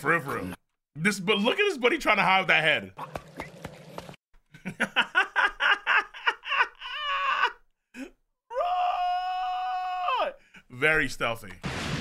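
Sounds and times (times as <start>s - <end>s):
man laughing hard: 4.6s - 7.6s.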